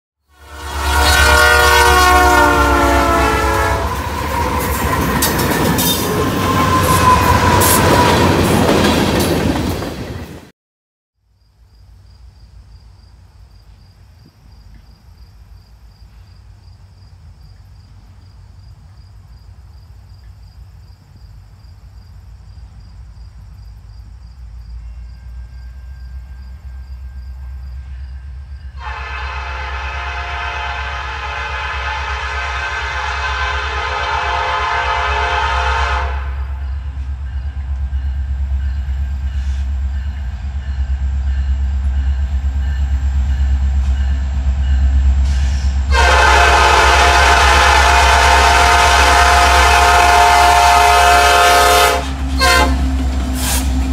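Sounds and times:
locomotive air horn blast: 0:00.3 - 0:08.3, 0:28.8 - 0:36.6, 0:45.2 - 0:53.9
diesel locomotive engine rumble: 0:00.4 - 0:10.5, 0:11.9 - 0:53.9.

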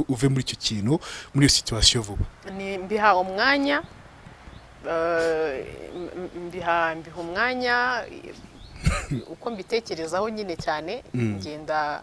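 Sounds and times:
woman's drawn-out vocal sound: 0:11.1 - 0:11.5.

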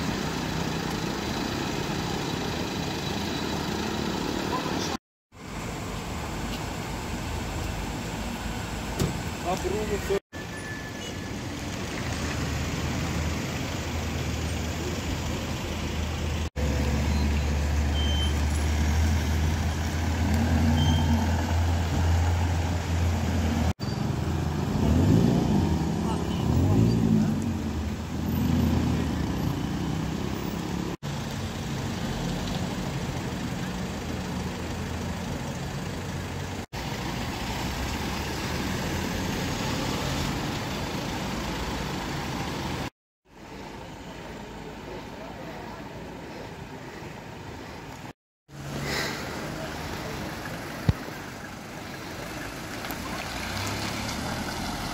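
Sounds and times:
people talking: 0:09.4 - 0:10.2, 0:25.9 - 0:27.5
vehicle engine idling: 0:11.5 - 0:18.8, 0:31.0 - 0:39.0.

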